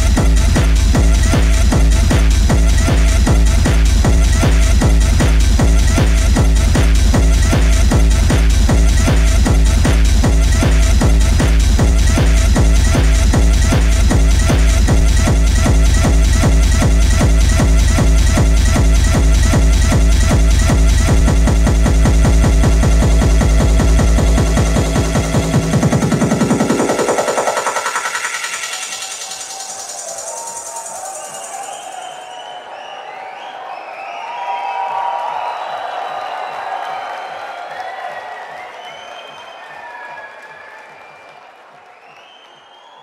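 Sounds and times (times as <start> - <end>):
techno music with pounding kick drum: 0.0 - 31.9
large crowd cheering: 0.0 - 43.0.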